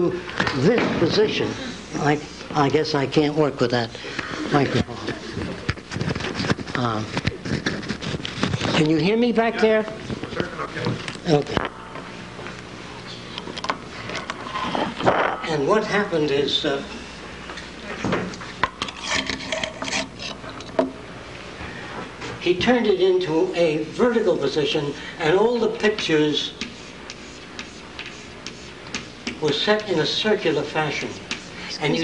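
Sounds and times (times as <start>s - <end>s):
low room hum: 0.0s - 32.0s
chalk tapping and scraping on chalkboard: 25.8s - 31.6s.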